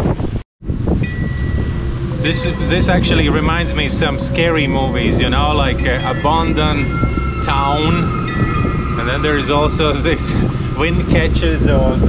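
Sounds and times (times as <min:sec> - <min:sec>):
wind buffeting microphone: 0:00.0 - 0:12.0
metal wind chime ringing: 0:00.9 - 0:12.0.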